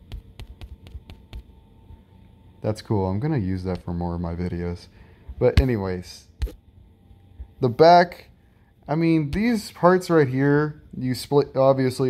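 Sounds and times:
light taps on device screen: 0:00.0 - 0:01.5.

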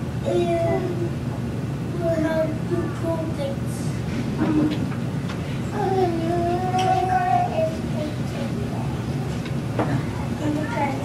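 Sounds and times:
child singing a long note: 0:00.2 - 0:01.2, 0:01.9 - 0:03.8, 0:05.7 - 0:09.0.

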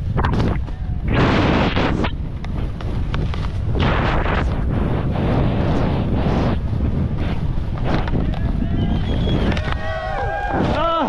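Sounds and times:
wind buffeting microphone: 0:00.0 - 0:11.0
skis sliding on snow: 0:00.4 - 0:11.0
spectators shouting and cheering: 0:08.3 - 0:11.0.

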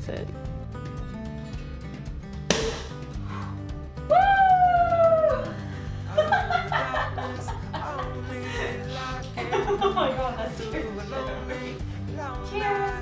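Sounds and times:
background music: 0:00.0 - 0:13.0
person whooping a cheer: 0:04.1 - 0:05.6
laughter: 0:06.0 - 0:11.2.

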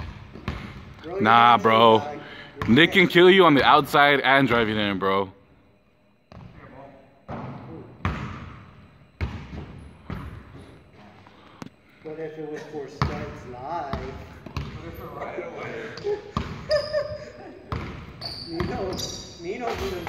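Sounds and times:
basketball bouncing on hardwood floor: 0:13.9 - 0:14.8.

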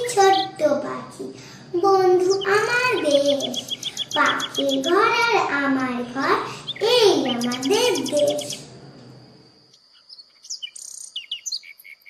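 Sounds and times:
small birds chirping: 0:00.0 - 0:12.0
thin steady high tone: 0:01.7 - 0:11.5.

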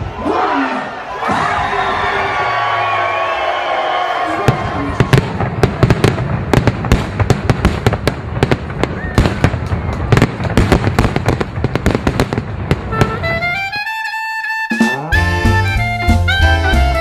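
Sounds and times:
fireworks bangs: 0:02.3 - 0:14.0.

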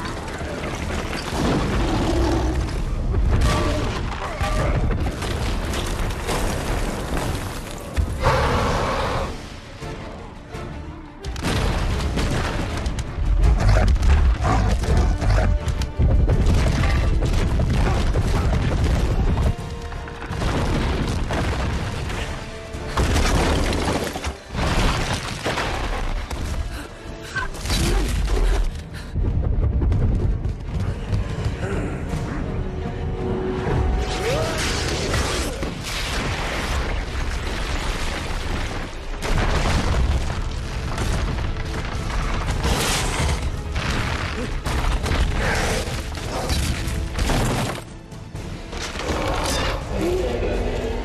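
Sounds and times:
background music: 0:00.0 - 0:51.0
orchestral score: 0:07.9 - 0:29.5, 0:30.5 - 0:37.8, 0:40.7 - 0:51.0
crashing debris: 0:20.2 - 0:26.6, 0:34.7 - 0:48.0.

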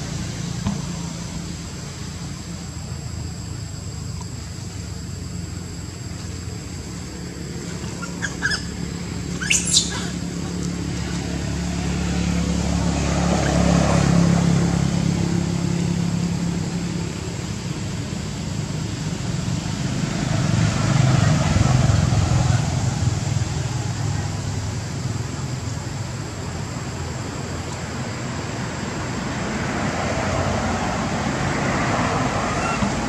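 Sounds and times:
faint steady high whine: 0:00.0 - 0:33.0
macaque squeaking: 0:07.6 - 0:10.5.

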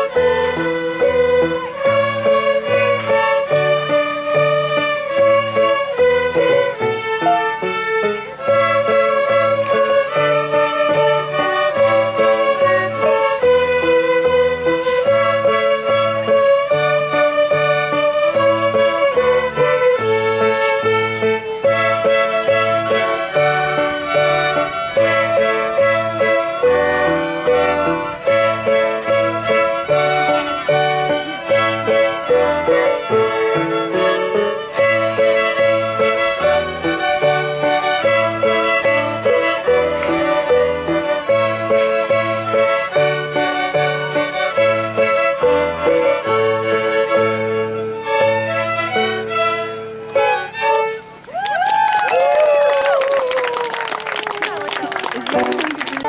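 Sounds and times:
violins playing a tune: 0:00.0 - 0:51.4, 0:53.8 - 0:56.0.

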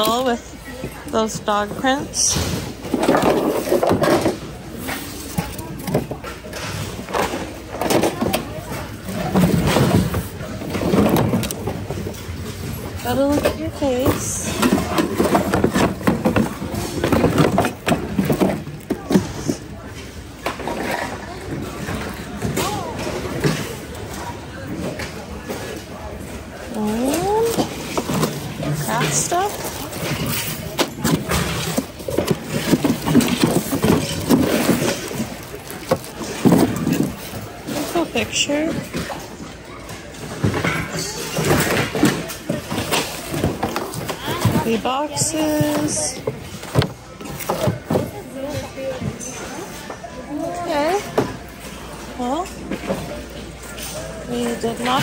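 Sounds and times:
items sliding and knocking together: 0:00.0 - 0:25.8, 0:26.6 - 0:55.0
rummaging in a cardboard box: 0:01.2 - 0:21.2, 0:26.6 - 0:39.5, 0:40.3 - 0:49.3
plastic-wrapped goods rustling: 0:26.6 - 0:39.5.

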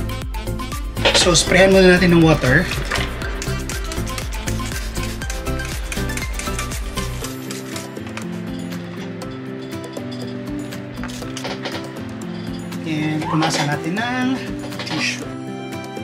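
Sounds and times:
background music: 0:00.0 - 0:16.0
spray bottle squirts: 0:02.7 - 0:08.7.

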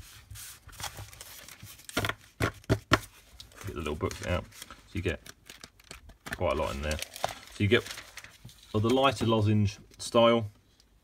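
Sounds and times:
paper sheets rustling: 0:00.0 - 0:09.6.

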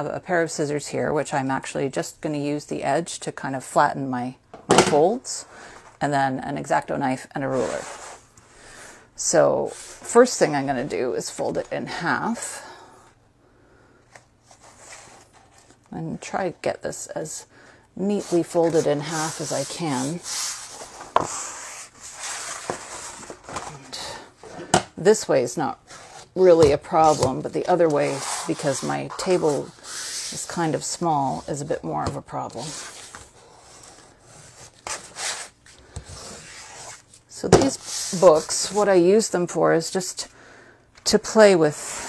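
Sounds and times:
paper rustling and sliding: 0:18.2 - 0:23.8.

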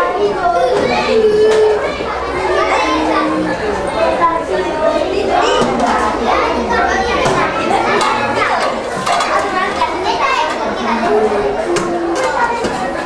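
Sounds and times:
children talking and calling out: 0:00.0 - 0:13.0
metal dishes clinking: 0:07.4 - 0:09.8.

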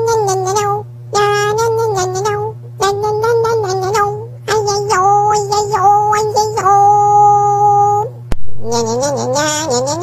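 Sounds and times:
high childlike singing voice: 0:00.0 - 0:10.0
steady low hum: 0:00.0 - 0:10.0.

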